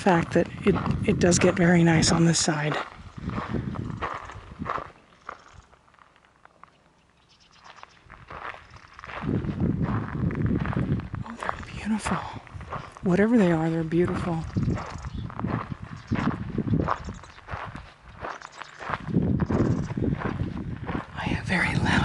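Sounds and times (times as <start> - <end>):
footsteps crunching on gravel: 0.0 - 6.8, 7.5 - 22.0.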